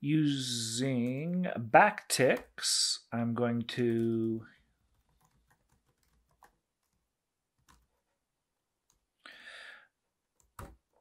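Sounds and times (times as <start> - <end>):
typing on computer keyboard: 3.9 - 8.0.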